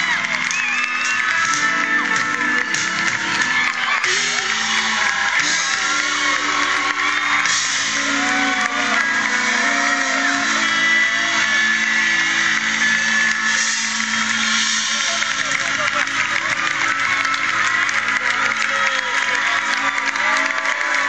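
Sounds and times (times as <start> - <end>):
crowd noise: 0.0 - 21.0
live rock band playing: 0.0 - 21.0.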